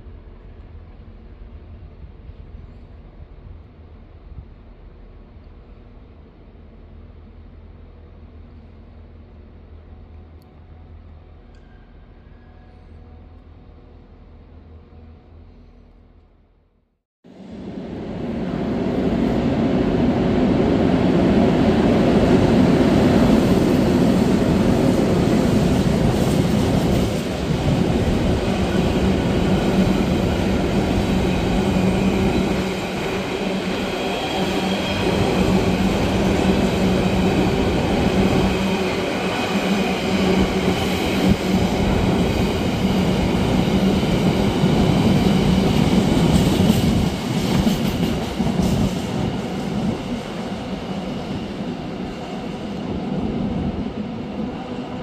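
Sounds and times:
train wheels rumbling on rails: 17.4s - 55.0s.

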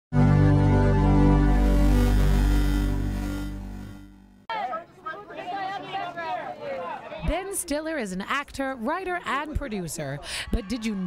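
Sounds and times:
electronic music sting: 0.2s - 4.5s
people talking: 4.5s - 11.0s.

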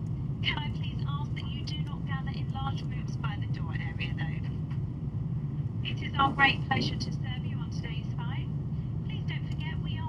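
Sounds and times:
airliner cabin drone: 0.0s - 10.0s.

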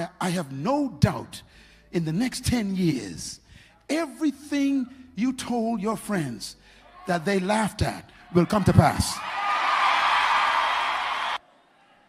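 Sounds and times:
crowd cheering and shouting: 6.9s - 12.0s.

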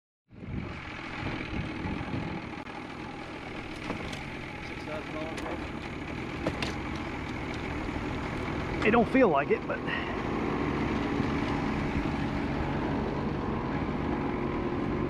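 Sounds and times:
outboard motor running: 0.3s - 15.0s.

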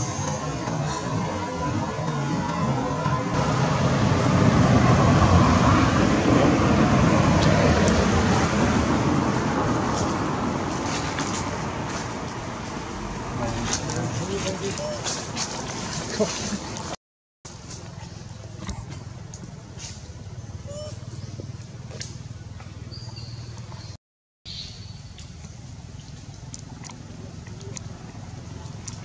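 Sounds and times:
road traffic rush: 0.0s - 23.8s, 25.4s - 29.0s.

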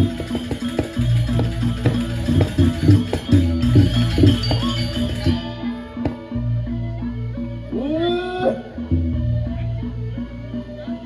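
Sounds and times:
gamelan ensemble playing: 0.0s - 7.8s.

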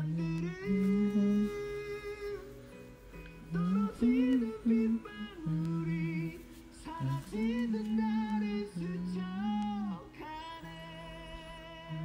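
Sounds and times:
person singing slow melody: 0.0s - 12.0s.

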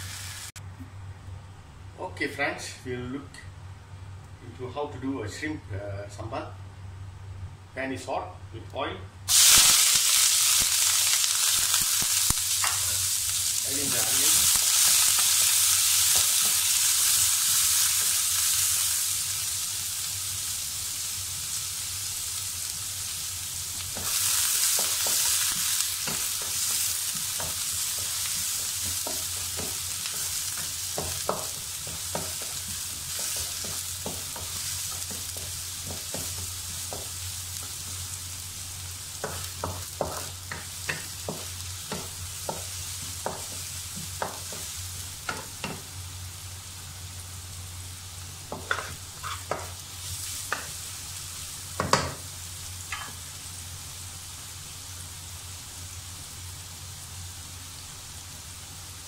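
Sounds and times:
onions sizzling in hot oil: 0.0s - 0.6s, 9.3s - 59.0s.

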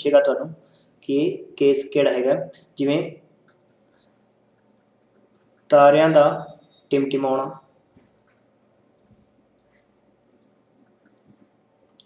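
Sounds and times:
man speaking: 0.0s - 3.3s, 5.7s - 7.7s
stylus tapping on tablet: 7.9s - 11.5s.

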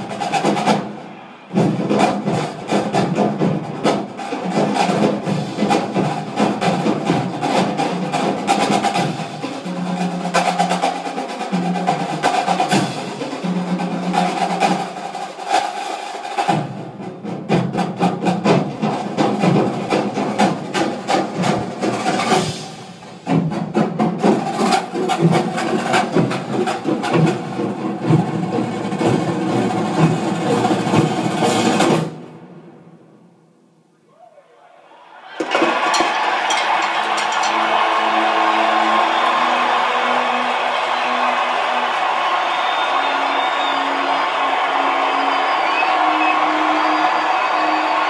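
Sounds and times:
snare drum rolls: 0.0s - 32.3s, 35.3s - 48.0s
marching band music: 0.0s - 32.7s, 35.4s - 48.0s
held brass notes: 36.0s - 48.0s.

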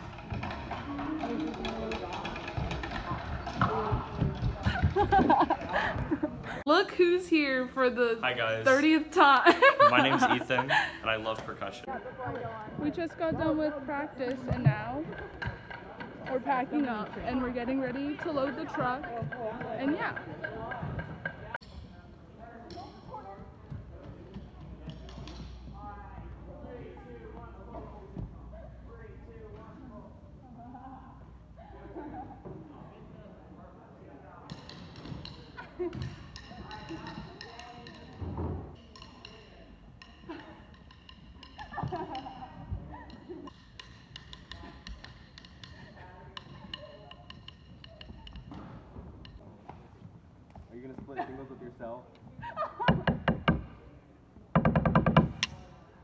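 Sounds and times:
voices echoing in a gymnasium: 0.0s - 53.0s
wooden drumsticks tapping: 38.8s - 48.6s.

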